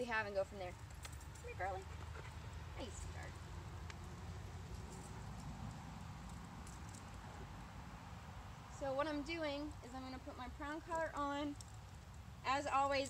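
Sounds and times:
dog nails clicking on asphalt: 0.6 - 7.8, 10.8 - 12.4.

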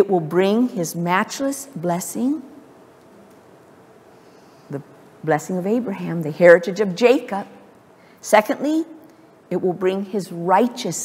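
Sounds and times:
woman's voice: 0.0 - 2.6, 4.7 - 7.6, 8.2 - 11.0
faint steady hum: 0.0 - 11.0.

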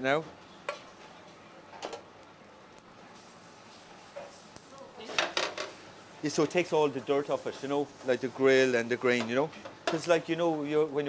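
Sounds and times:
salt scraping on grill pan: 3.1 - 10.7.

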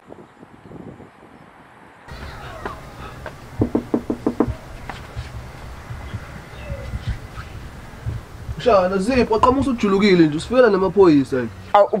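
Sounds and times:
knocking on a door: 3.6 - 4.6.

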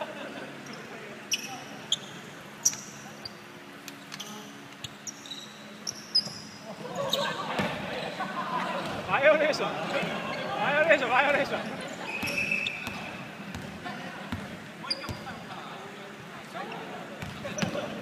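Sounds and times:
sneaker squeaks: 0.6 - 9.1, 9.9 - 11.1, 11.7 - 15.5, 17.2 - 18.0.

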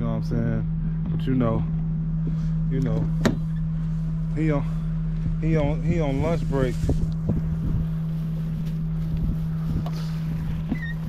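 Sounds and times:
low engine-like hum: 0.0 - 11.0
wind noise on microphone: 5.1 - 11.0.

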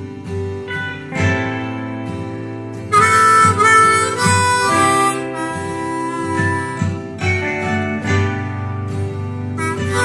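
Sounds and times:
strummed acoustic guitar: 0.0 - 10.0
harmonica playing slow melody: 2.8 - 8.2, 9.4 - 10.0.

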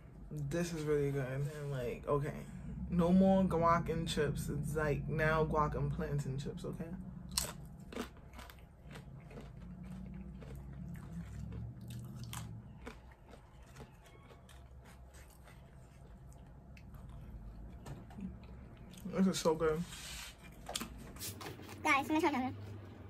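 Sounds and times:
chip crunching and chewing: 7.2 - 19.2.

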